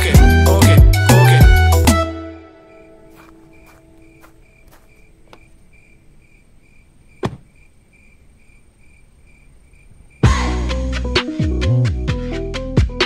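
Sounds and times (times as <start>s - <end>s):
song ending: 0.0s - 2.5s
crickets chirping: 2.4s - 11.3s
sharp knock: 7.2s - 7.5s.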